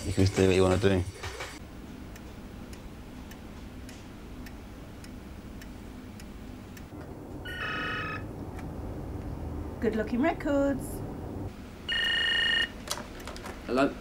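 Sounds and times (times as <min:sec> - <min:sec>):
low steady hum: 0:01.6 - 0:14.0
desk telephone ringing: 0:07.4 - 0:08.3, 0:11.9 - 0:12.8.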